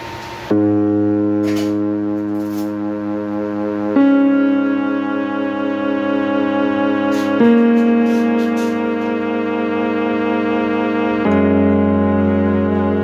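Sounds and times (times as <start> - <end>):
held keyboard chords: 0.5 - 13.0.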